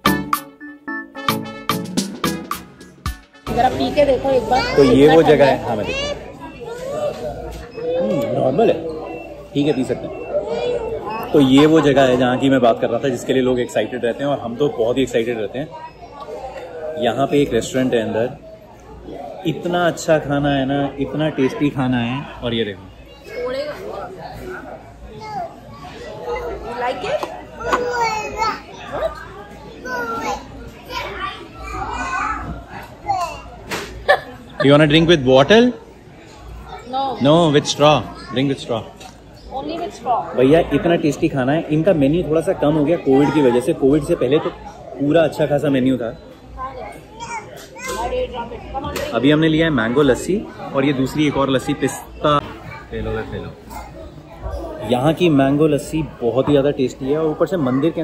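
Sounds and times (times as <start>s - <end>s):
restaurant chatter: 0.0s - 58.0s
children's voices: 3.7s - 11.9s, 15.7s - 17.4s, 23.0s - 34.5s, 36.3s - 37.3s, 46.4s - 49.1s, 50.4s - 55.2s
toddler babbling: 25.1s - 25.7s, 27.6s - 28.8s.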